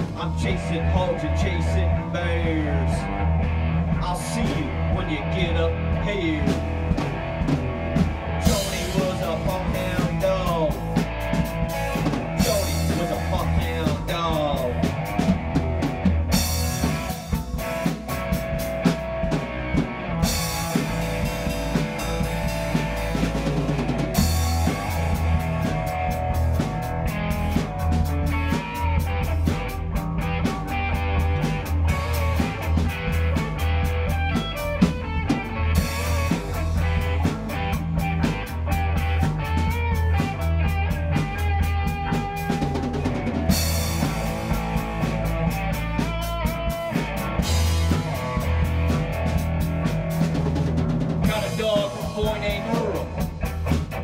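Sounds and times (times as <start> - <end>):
bass line: 0.0 - 54.0
drum kit beat: 0.0 - 54.0
guitar lead with bent notes: 0.0 - 54.0.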